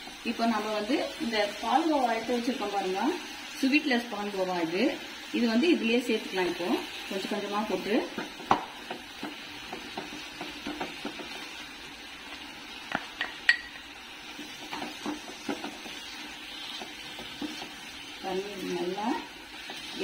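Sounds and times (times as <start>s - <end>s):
faint sizzle: 0.0s - 20.0s
spatula scraping frying pan: 14.2s - 20.0s.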